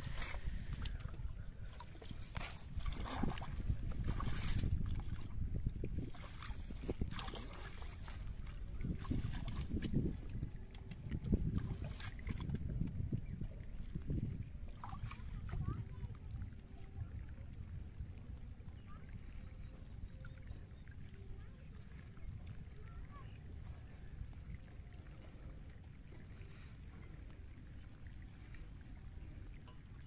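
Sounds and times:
faint rustling of water plants: 0.0 - 30.0
small water splashes: 0.0 - 30.0.

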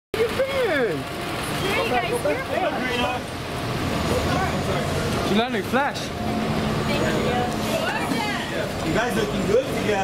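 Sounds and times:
people talking: 0.2 - 3.3, 4.0 - 6.2, 6.8 - 10.0
traffic noise: 0.2 - 10.0.

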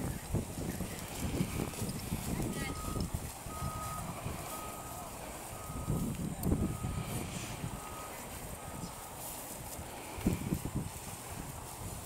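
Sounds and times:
vehicle reversing alarm beeping: 2.5 - 9.2.

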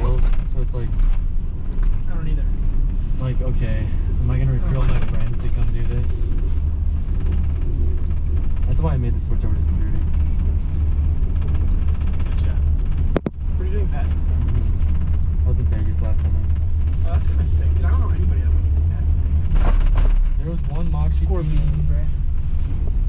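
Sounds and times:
gondola cabin rumble: 0.0 - 23.0.

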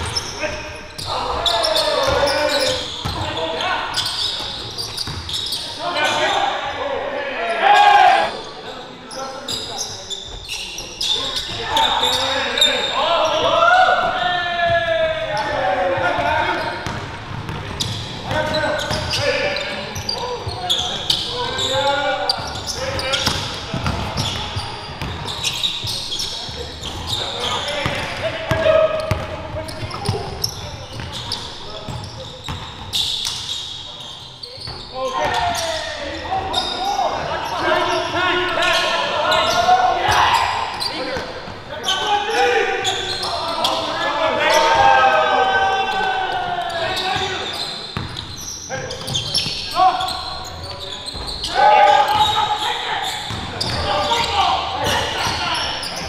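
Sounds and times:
players shouting: 0.0 - 4.4, 5.7 - 8.5, 11.3 - 16.9, 34.9 - 47.8, 51.0 - 56.0.

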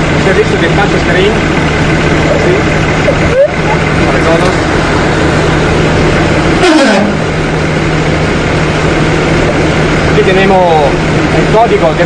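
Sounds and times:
short falling sound: 6.6 - 7.5.

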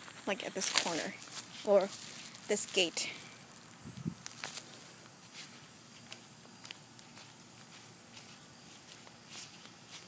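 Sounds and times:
footsteps on dry grass: 0.0 - 10.0.

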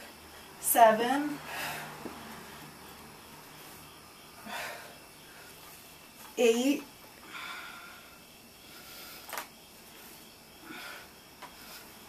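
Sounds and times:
woman breathing hard: 1.4 - 2.8, 4.1 - 5.7, 7.2 - 12.0.

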